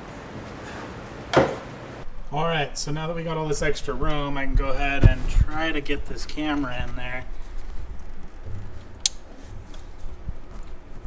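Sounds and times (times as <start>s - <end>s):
sharp click: 9.0s - 9.2s.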